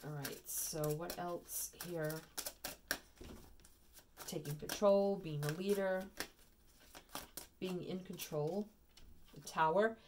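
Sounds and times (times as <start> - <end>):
card handling noise: 0.0 - 9.4.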